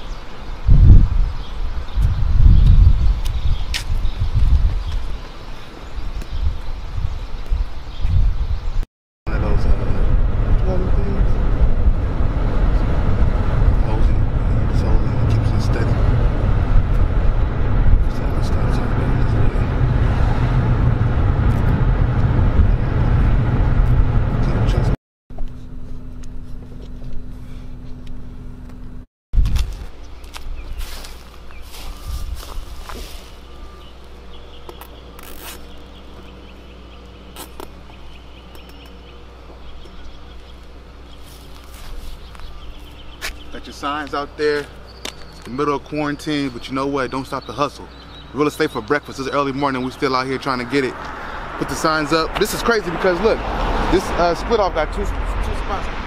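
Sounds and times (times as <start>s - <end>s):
car engine and road noise: 0.0s - 56.0s
outdoor ambience: 0.0s - 56.0s.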